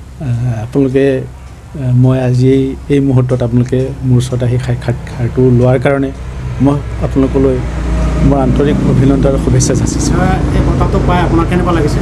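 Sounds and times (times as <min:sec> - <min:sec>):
man talking: 0:00.2 - 0:12.0.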